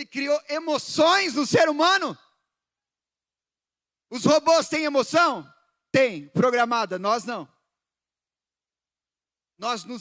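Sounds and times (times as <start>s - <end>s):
man's amplified speech: 0.0s - 2.4s, 4.0s - 7.6s, 9.5s - 10.0s.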